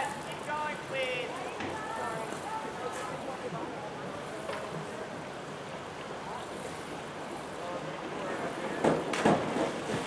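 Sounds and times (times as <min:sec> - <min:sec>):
steady outdoor hiss: 0:00.0 - 0:10.0
loud water splash: 0:09.0 - 0:10.0.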